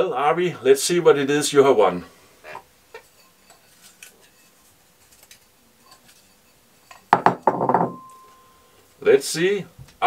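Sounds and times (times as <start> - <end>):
small objects clinking on desk: 6.9 - 8.4.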